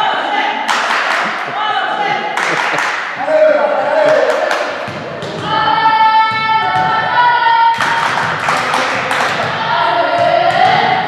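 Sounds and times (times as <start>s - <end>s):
girls chanting in unison: 5.4s - 8.3s, 9.2s - 11.0s.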